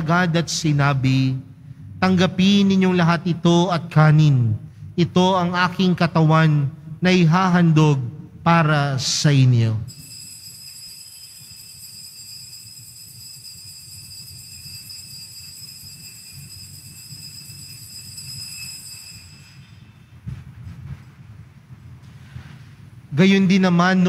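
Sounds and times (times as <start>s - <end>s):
altar bells ringing: 9.9s - 20.2s.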